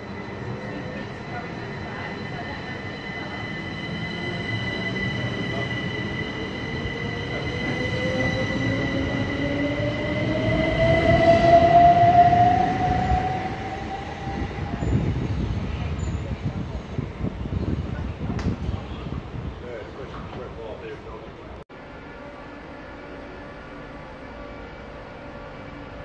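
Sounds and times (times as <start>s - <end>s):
wheels rumbling on rail: 0.0s - 21.6s.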